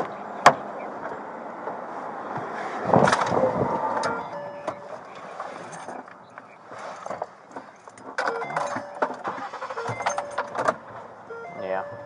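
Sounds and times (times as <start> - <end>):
short electronic beeps: 4.1 - 4.9, 8.2 - 10.6, 11.3 - 12.0.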